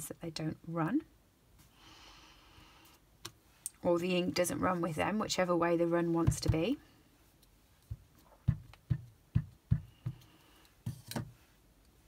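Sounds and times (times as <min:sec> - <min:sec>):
ink pad tapping on rubber stamp: 0:07.9 - 0:10.3.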